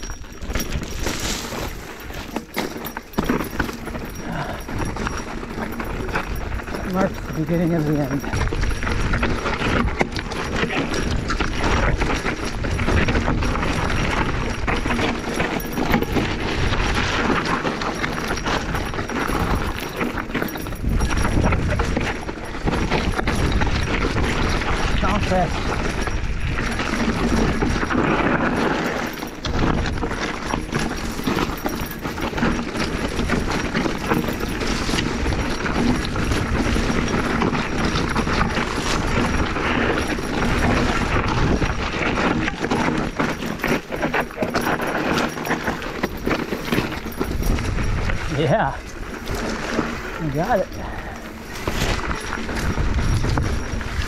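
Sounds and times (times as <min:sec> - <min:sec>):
bike clattering over rocks: 0:00.0 - 0:54.0
brush scraping against bike: 0:00.7 - 0:06.8, 0:48.8 - 0:54.0.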